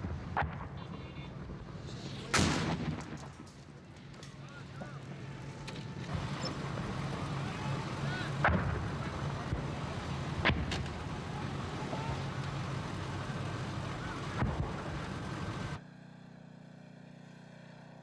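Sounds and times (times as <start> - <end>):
sharp cracks: 0.0 - 15.8
engine running: 0.0 - 18.0.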